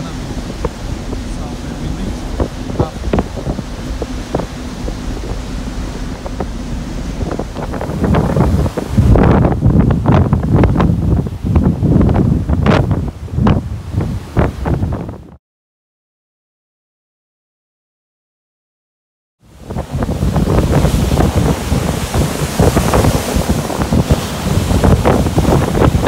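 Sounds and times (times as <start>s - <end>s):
ship wake rushing: 0.0s - 15.4s, 19.4s - 26.0s
wind buffeting microphone: 0.0s - 15.4s, 19.4s - 26.0s.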